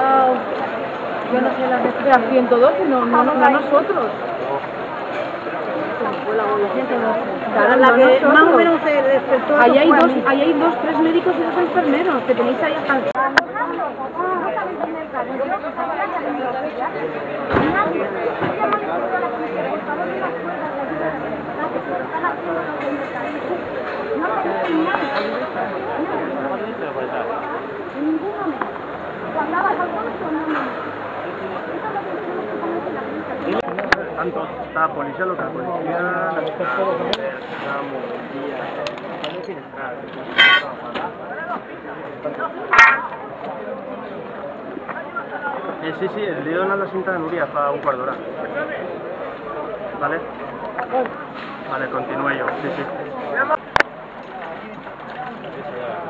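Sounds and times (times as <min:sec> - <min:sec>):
crowd chatter: 0:00.0 - 0:56.0
outdoor street noise: 0:00.0 - 0:56.0
people talking indistinctly: 0:00.0 - 0:56.0.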